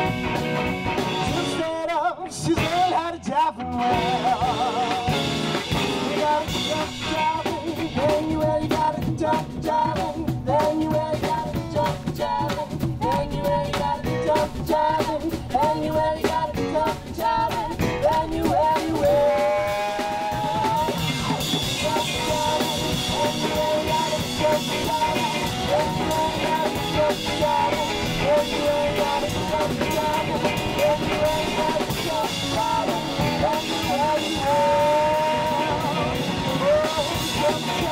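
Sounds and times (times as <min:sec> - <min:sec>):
live rock band playing: 0:00.0 - 0:37.9
people singing: 0:01.0 - 0:37.9.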